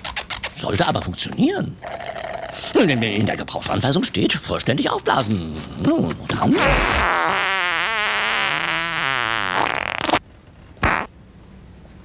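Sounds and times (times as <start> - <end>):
whoopee cushion raspy buzz: 6.4 - 10.2, 10.8 - 11.1.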